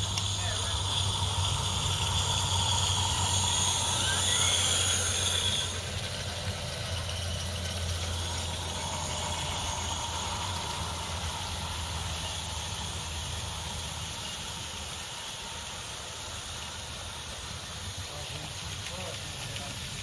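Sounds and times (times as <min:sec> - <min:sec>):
model train rolling on track: 0:00.0 - 0:20.0
model train squealing: 0:00.0 - 0:20.0
steady low hum: 0:00.0 - 0:20.0.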